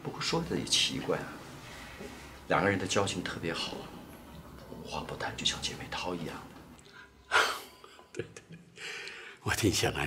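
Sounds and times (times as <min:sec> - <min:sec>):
man breathing sharply: 0:08.8 - 0:09.4.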